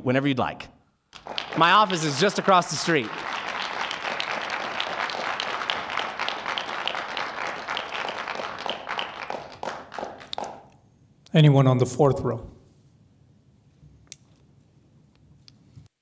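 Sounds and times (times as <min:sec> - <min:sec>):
audience applauding: 0:01.2 - 0:10.8.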